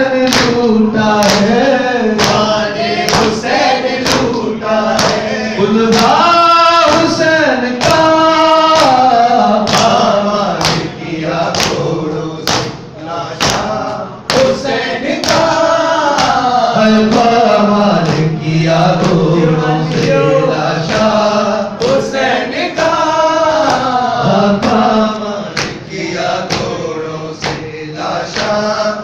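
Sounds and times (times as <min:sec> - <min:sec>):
men chanting a lament: 0:00.0 - 0:29.0
chest-beating slaps: 0:02.2 - 0:02.5, 0:05.0 - 0:05.3, 0:10.6 - 0:10.9, 0:12.5 - 0:14.6, 0:25.5 - 0:27.7
hands slapping chests: 0:02.2 - 0:02.5, 0:05.0 - 0:05.2, 0:12.5 - 0:12.8.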